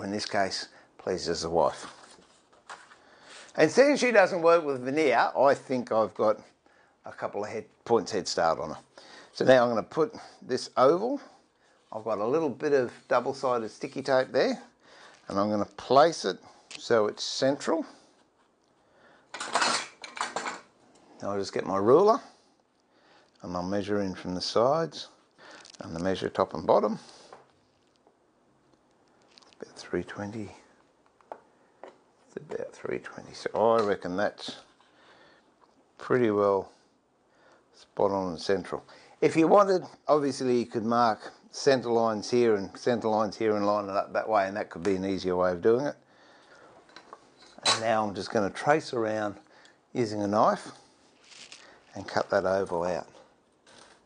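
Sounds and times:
man speaking: 0.0s - 2.1s, 3.5s - 6.5s, 7.1s - 18.0s, 21.2s - 22.4s, 23.4s - 27.1s, 29.6s - 30.7s, 32.3s - 34.7s, 36.0s - 36.8s, 37.8s - 46.0s, 47.6s - 50.9s, 51.9s - 53.2s
tools clattering on workbench: 19.3s - 20.7s.

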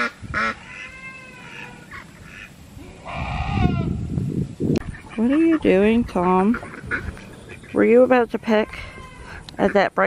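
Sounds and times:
ducks quacking: 0.0s - 3.9s, 4.8s - 10.0s.

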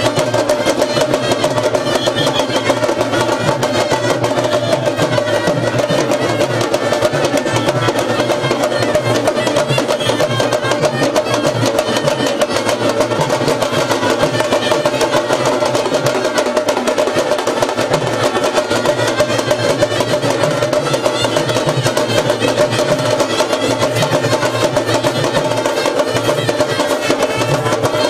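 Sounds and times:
fast steady drumming: 0.0s - 28.0s.

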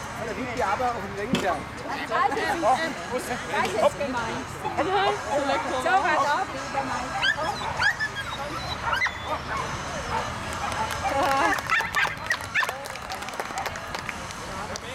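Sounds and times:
people's voices: 0.0s - 14.9s
dog barking: 7.2s - 12.7s.

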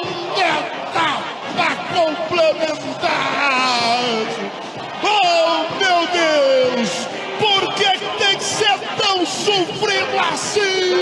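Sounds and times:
broadcaster shouting excitedly: 0.0s - 11.0s
stadium crowd cheering: 0.0s - 11.0s.

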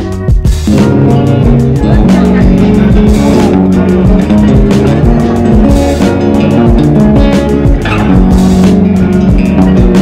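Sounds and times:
acoustic guitar through amplifier: 0.0s - 10.0s
person's voice: 0.8s - 10.0s.

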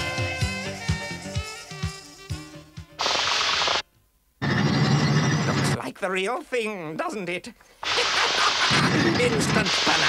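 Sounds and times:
cartoon spray gun hissing: 3.0s - 3.8s, 7.8s - 9.0s, 9.6s - 10.0s.

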